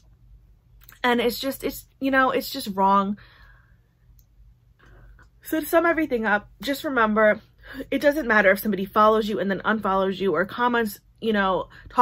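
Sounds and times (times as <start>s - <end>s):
low room hum: 0.0s - 12.0s
woman talking: 0.9s - 3.2s, 5.4s - 12.0s
breathing: 3.2s - 4.0s.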